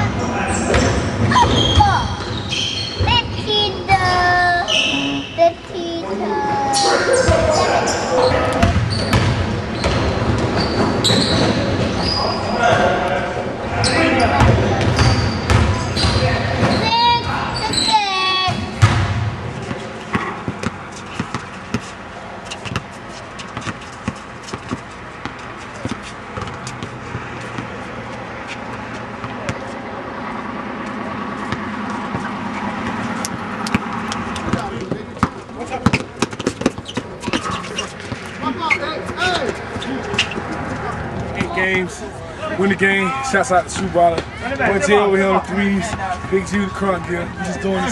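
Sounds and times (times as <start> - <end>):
players shouting: 0.1 - 9.1, 37.1 - 47.9
basketball bouncing on court: 0.6 - 3.4, 8.6 - 12.9, 14.2 - 29.7, 31.4 - 38.4.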